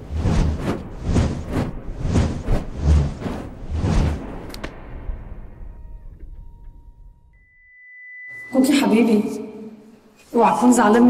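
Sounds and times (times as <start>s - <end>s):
faint low rumble: 0.0s - 7.5s
high pure steady tone: 6.9s - 9.6s.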